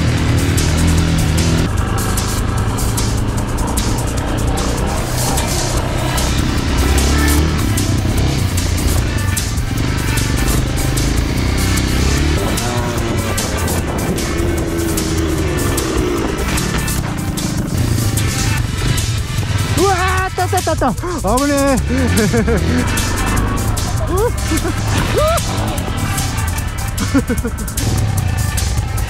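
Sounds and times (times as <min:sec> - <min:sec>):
background music with steady beat: 0:00.0 - 0:29.0
motorcycle engine revving: 0:00.0 - 0:29.0.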